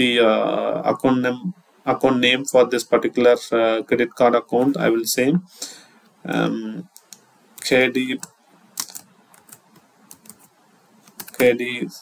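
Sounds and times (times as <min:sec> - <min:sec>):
computer keyboard keystrokes: 0:08.2 - 0:11.5.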